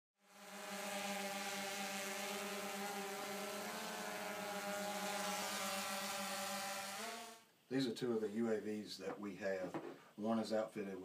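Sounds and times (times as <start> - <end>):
drone propellers buzzing: 0.2 - 7.4.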